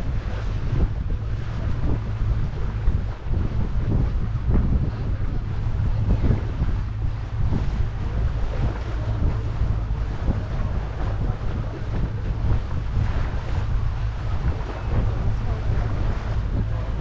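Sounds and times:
water rushing along hull: 0.0s - 17.0s
wind buffeting microphone: 0.0s - 17.0s.

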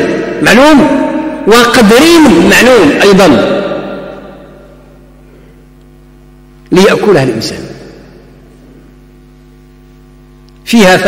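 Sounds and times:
echo of spoken words: 0.0s - 5.9s, 6.6s - 9.2s, 10.5s - 11.0s
electrical mains hum: 0.0s - 11.0s.

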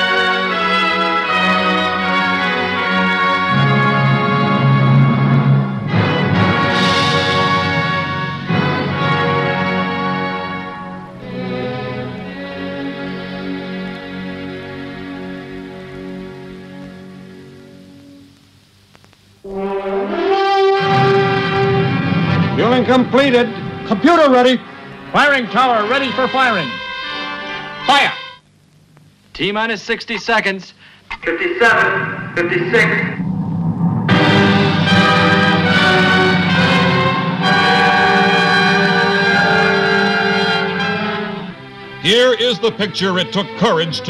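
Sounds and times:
film score brass: 0.0s - 18.1s, 19.4s - 28.4s, 31.5s - 44.0s
faint clicks: 16.8s - 19.4s, 28.4s - 29.4s
low rumble: 31.8s - 40.1s.

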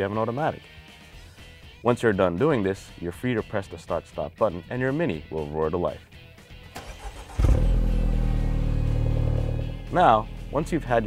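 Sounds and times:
car engine starting and idling: 6.7s - 10.6s.

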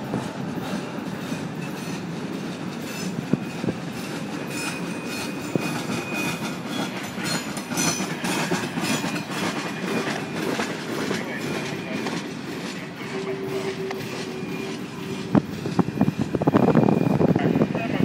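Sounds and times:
train wheels clicking on rail joints: 0.0s - 17.8s
train rolling rumble: 0.0s - 18.0s.

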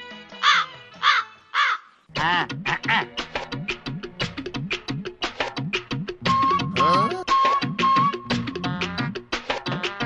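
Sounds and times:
crow cawing: 0.4s - 3.0s
upbeat music with percussion: 2.2s - 10.0s.

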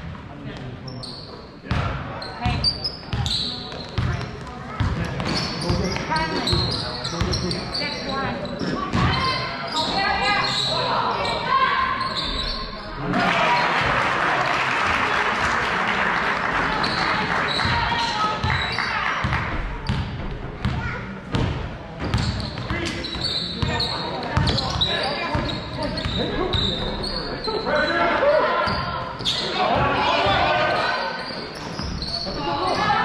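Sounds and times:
crowd cheering: 13.0s - 19.6s.

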